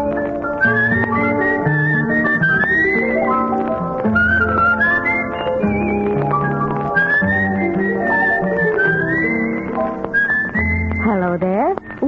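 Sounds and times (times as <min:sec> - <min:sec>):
whistled melody: 0:00.0 - 0:12.0.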